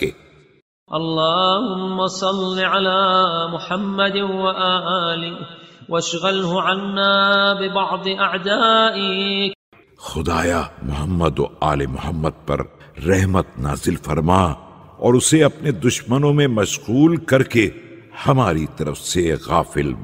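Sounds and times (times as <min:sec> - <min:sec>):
person chanting melodic recitation: 0:00.9 - 0:20.0.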